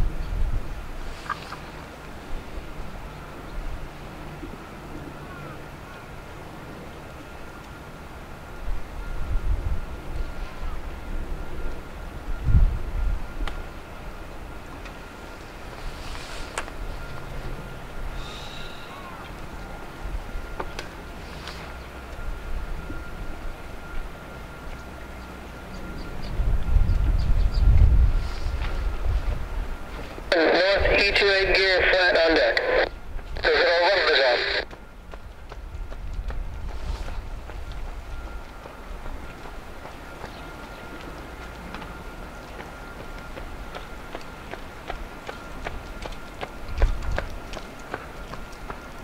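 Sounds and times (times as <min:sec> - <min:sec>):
distant jet engine whine and rumble: 0:00.0 - 0:49.0.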